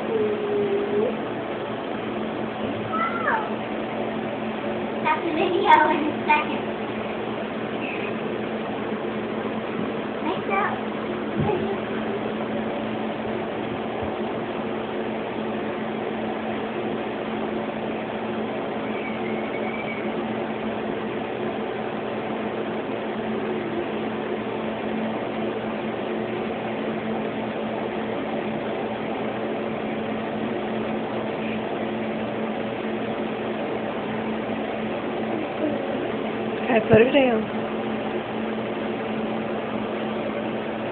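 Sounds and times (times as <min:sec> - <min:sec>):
machine hum with hiss: 0:00.0 - 0:40.9.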